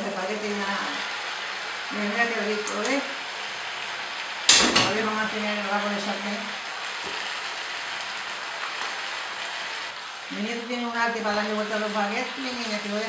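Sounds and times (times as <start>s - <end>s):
spaghetti sizzling in frying pan: 0.0s - 13.0s.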